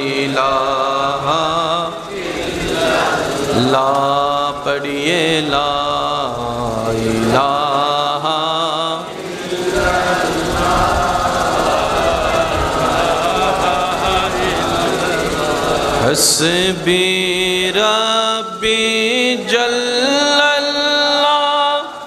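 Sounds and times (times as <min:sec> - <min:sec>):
man chanting: 0:00.0 - 0:22.0.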